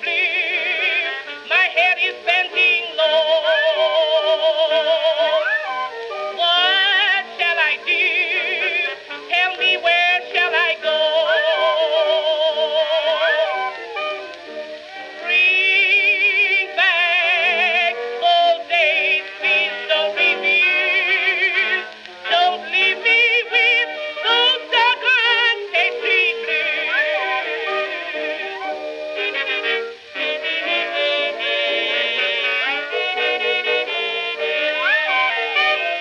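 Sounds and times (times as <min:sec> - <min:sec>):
woman singing blues: 0:00.0 - 0:05.6, 0:06.3 - 0:14.4, 0:15.0 - 0:36.0
small orchestra: 0:00.0 - 0:36.0.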